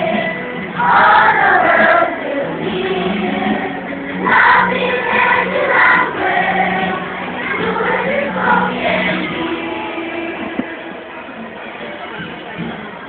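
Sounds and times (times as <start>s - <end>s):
choir singing: 0.0s - 10.9s.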